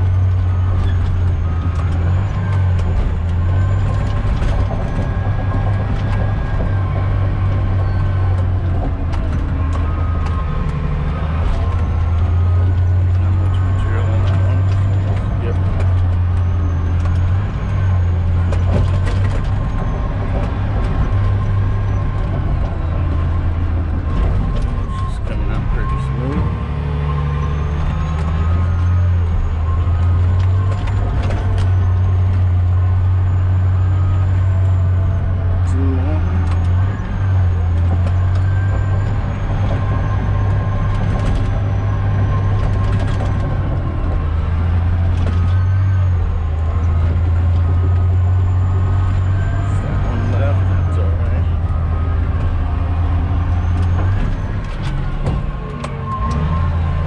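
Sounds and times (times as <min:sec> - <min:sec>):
bulldozer diesel engine running: 0:00.0 - 0:57.0
knocks and clanks from tracks: 0:53.0 - 0:57.0.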